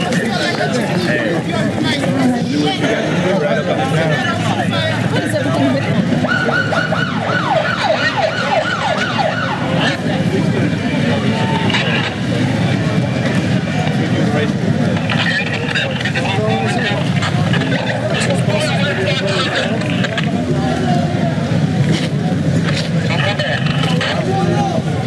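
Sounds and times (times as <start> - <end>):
loud crowd voices: 0.0 - 25.0
street noise: 0.0 - 25.0
emergency vehicle siren yelping: 5.0 - 12.3.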